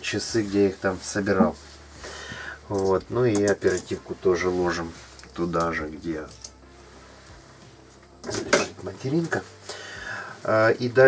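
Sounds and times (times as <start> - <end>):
man speaking: 0.0 - 1.6.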